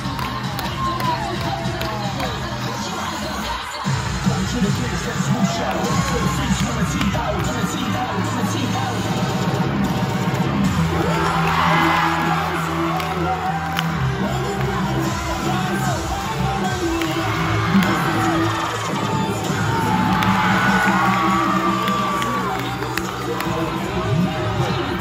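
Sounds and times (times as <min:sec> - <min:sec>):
cheer music mix: 0:00.0 - 0:25.0
crowd screaming and cheering: 0:00.0 - 0:25.0.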